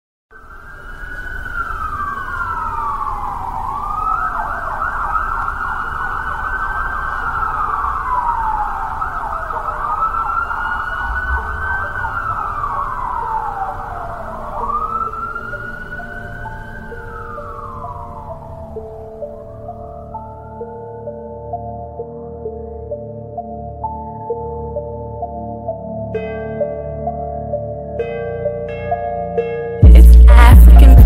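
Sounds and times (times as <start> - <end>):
siren wailing: 0.3 - 26.1.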